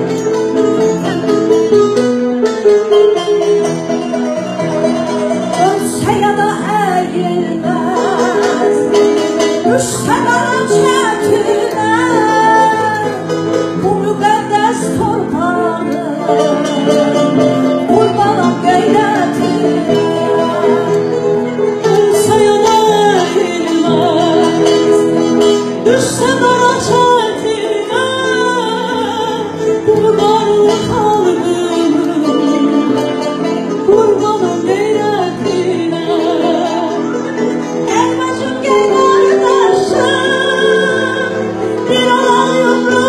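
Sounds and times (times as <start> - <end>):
plucked string instrument: 0.0 - 43.0
women singing together: 5.6 - 25.2, 25.9 - 33.3, 37.9 - 43.0.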